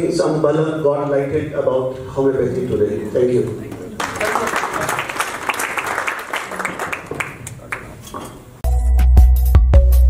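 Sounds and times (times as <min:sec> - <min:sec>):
audience applauding: 0:04.0 - 0:08.0.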